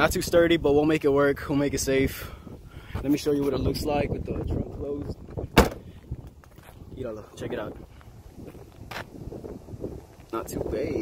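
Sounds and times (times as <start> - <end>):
wind buffeting microphone: 0.0 - 11.0
footsteps on asphalt: 4.9 - 11.0.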